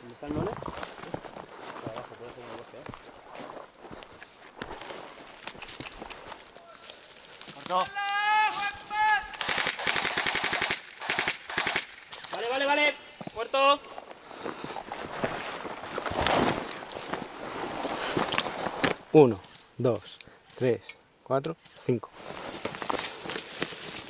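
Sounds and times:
airsoft rifles firing bursts: 9.4s - 12.3s
faint clicks and rustles: 12.1s - 24.0s.

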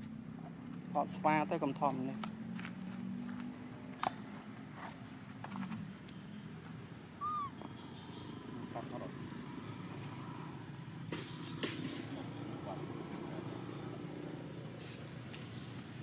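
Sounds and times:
infant monkey squeak: 7.2s - 7.6s.

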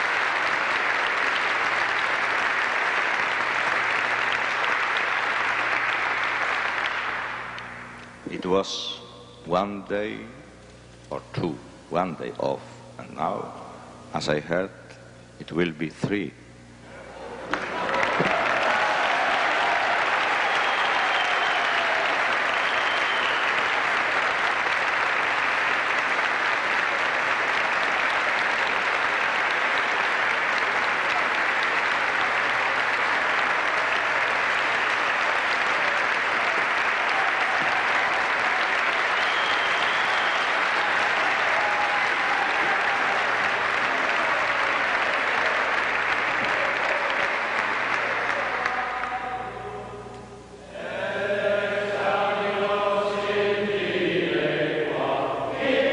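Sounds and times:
audience applause: 0.0s - 7.9s, 17.2s - 49.5s.

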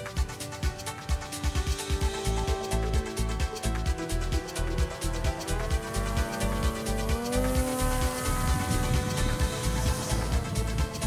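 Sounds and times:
electric motor and propeller buzz: 0.0s - 11.0s
electronic music with steady beat: 0.0s - 11.0s.

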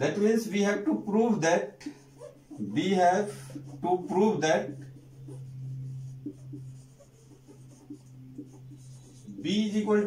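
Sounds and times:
marker squeaking on whiteboard: 1.8s - 10.0s.

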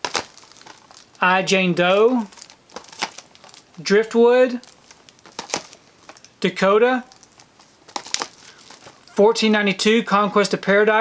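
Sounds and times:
plastic cases crinkling and clicking: 0.0s - 3.8s, 4.5s - 6.4s, 7.0s - 9.2s.

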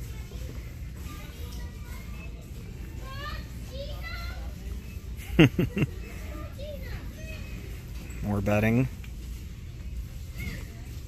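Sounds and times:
distant shoppers voices: 0.0s - 11.0s.

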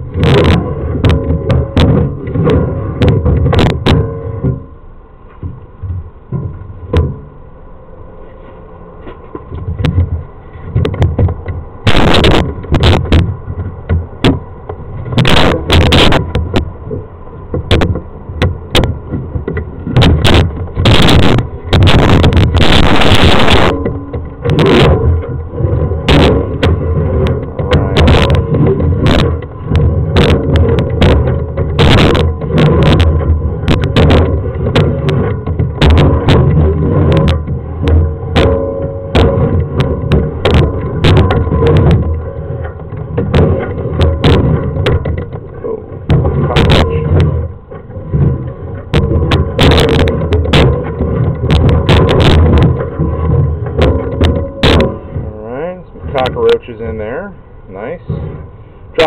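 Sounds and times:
cable knocking and rattling: 0.0s - 7.3s, 9.0s - 56.8s
steady low rumble: 0.0s - 59.0s.

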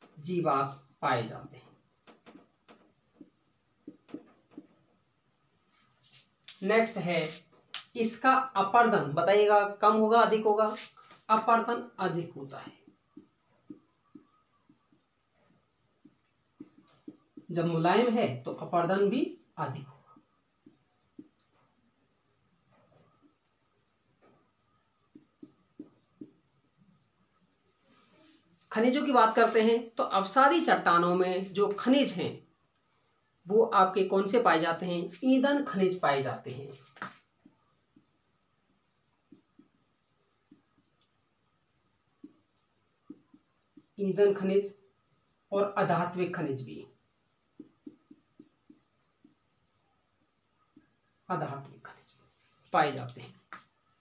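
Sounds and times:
marker writing on whiteboard: 0.0s - 32.8s, 33.4s - 54.0s.

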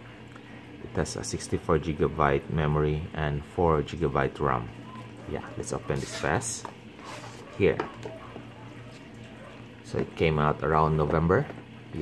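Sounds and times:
cardboard lid rubbing and sliding: 7.0s - 7.5s.

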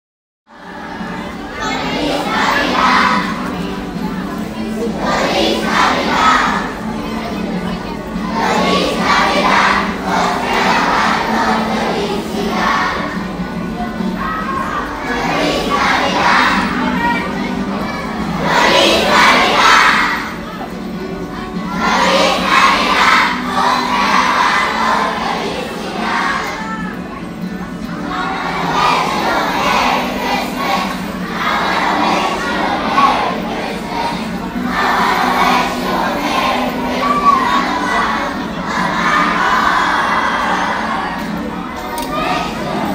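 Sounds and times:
children singing a carol: 0.5s - 42.9s.

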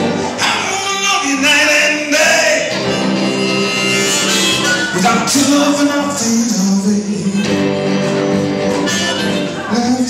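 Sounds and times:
electric guitar ringing notes: 0.0s - 10.0s.

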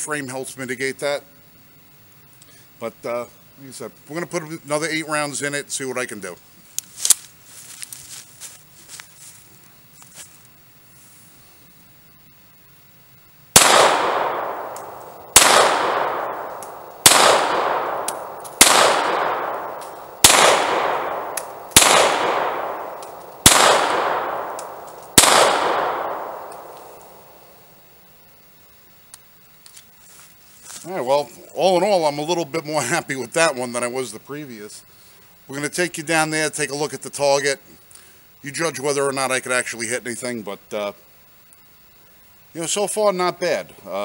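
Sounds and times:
pistol shots echoing: 13.6s - 27.6s
faint clicks: 21.3s - 21.6s, 29.0s - 30.0s.

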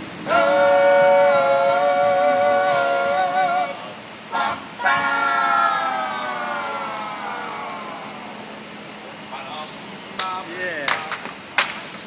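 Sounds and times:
men singing in close harmony: 0.2s - 6.3s.

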